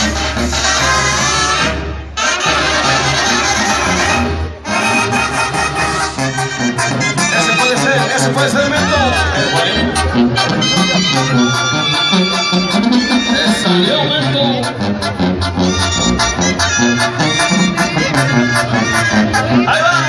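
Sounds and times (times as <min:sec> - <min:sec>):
brass band music: 0:00.0 - 0:20.0.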